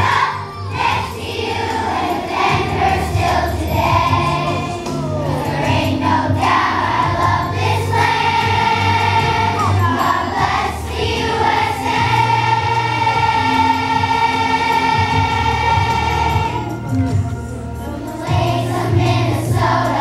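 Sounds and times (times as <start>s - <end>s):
children's choir singing: 0.0s - 20.0s
instrumental accompaniment: 0.0s - 20.0s.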